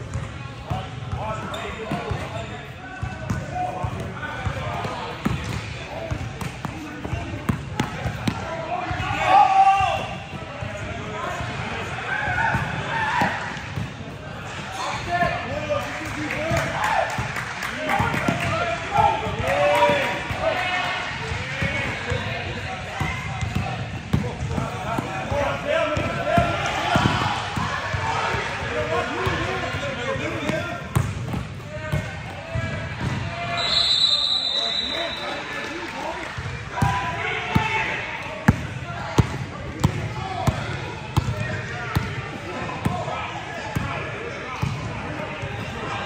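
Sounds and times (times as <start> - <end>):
players calling out: 1.1 - 46.0
basketball bouncing on gym floor: 23.0 - 25.1, 30.4 - 32.2, 38.4 - 42.2.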